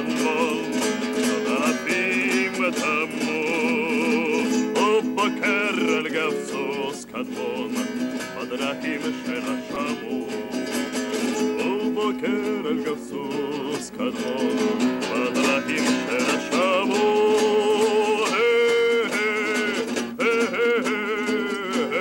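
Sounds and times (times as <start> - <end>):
man singing with vibrato: 0.0 - 22.0
strummed acoustic guitar: 0.0 - 22.0.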